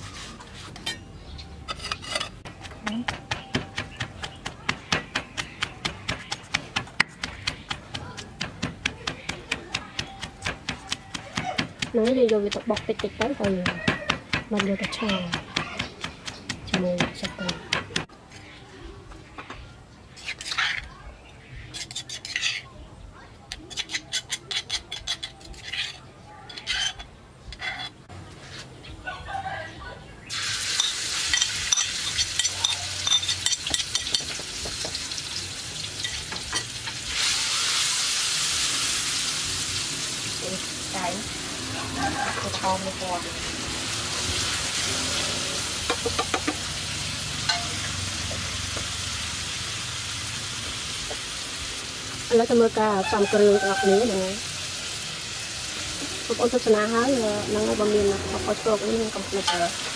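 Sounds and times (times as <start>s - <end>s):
metal spatula scraping wok: 0.0s - 3.0s, 20.1s - 20.9s, 21.6s - 22.8s, 23.6s - 28.1s, 30.7s - 34.4s, 40.0s - 49.0s
spoon scraping stone mortar: 0.0s - 18.1s, 20.1s - 21.0s, 21.7s - 22.8s, 23.5s - 28.0s, 30.7s - 35.0s
paste sizzling in hot oil: 30.3s - 59.9s.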